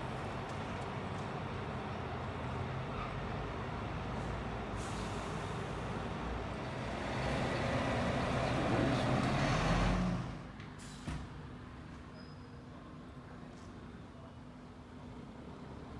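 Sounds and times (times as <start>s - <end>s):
fire engine diesel engine: 0.0s - 12.0s
air brakes hissing: 4.8s - 5.9s, 10.8s - 11.2s.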